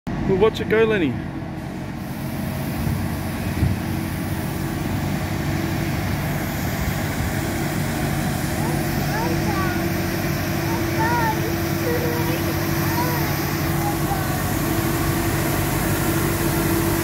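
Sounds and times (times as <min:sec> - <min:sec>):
street sweeper engine hum: 0:00.1 - 0:17.0
steady whine: 0:01.6 - 0:17.0.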